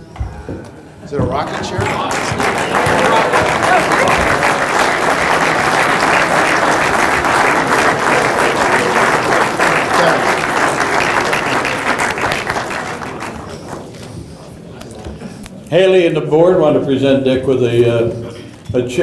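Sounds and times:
audience applauding: 0:01.3 - 0:14.0.

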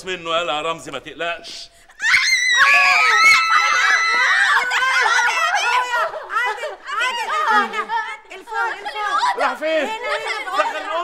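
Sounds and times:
women and girl screaming: 0:02.0 - 0:06.0.

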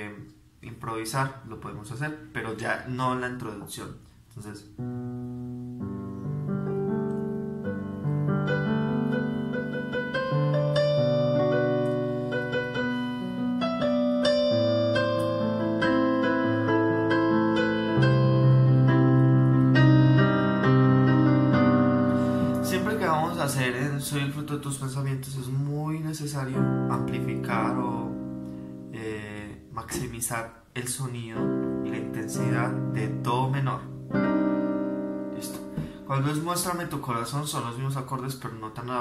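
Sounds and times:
electronic keyboard piano chords: 0:04.6 - 0:39.0.

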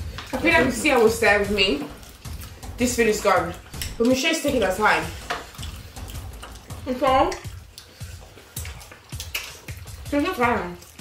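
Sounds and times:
faint slurping and chewing: 0:00.0 - 0:11.0
chopsticks clicking on plates: 0:03.7 - 0:09.9.

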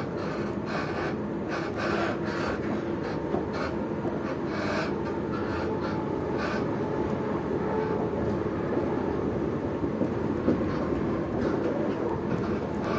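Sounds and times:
train wheels rumbling on rails: 0:00.0 - 0:12.9.

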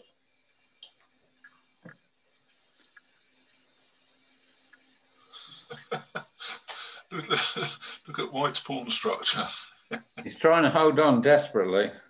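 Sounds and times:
man laughing: 0:05.4 - 0:10.5.

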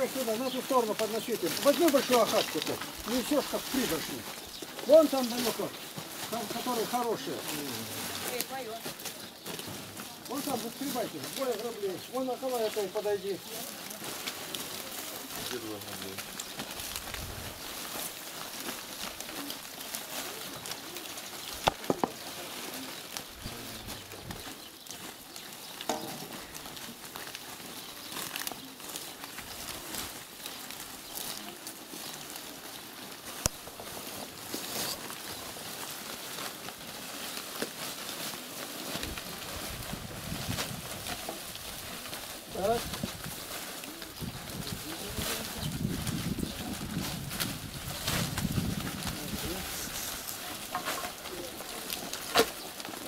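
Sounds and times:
bark and wood rustling: 0:00.0 - 0:53.0.

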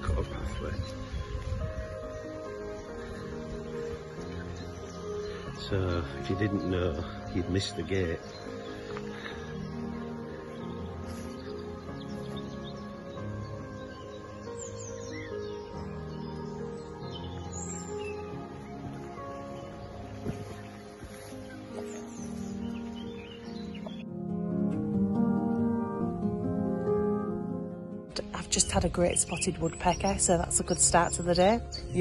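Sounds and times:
birds chirping faintly: 0:00.0 - 0:24.2
soft music of sustained chords: 0:00.0 - 0:32.0.

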